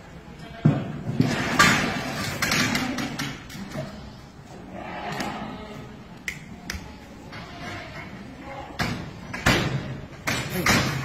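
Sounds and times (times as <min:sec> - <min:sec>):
livestock barn noise: 0:00.0 - 0:11.0.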